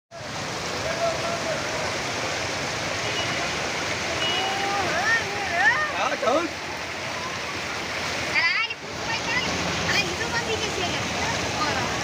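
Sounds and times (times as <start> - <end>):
floodwater rushing: 0.1 - 12.0.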